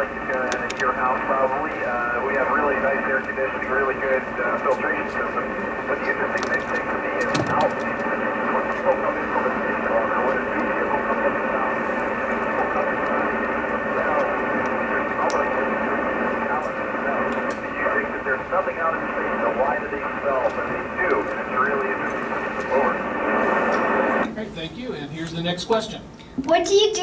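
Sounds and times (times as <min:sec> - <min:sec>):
person talking over radio: 0:00.0 - 0:24.3
radio static: 0:00.0 - 0:24.5.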